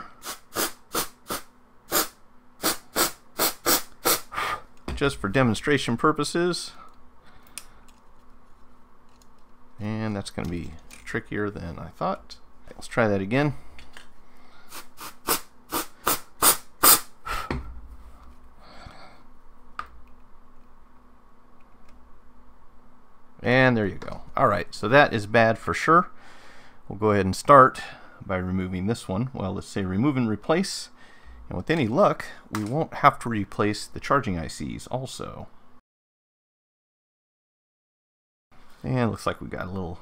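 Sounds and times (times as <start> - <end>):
aerosol spray hissing bursts: 0.2 - 4.3, 14.7 - 17.1.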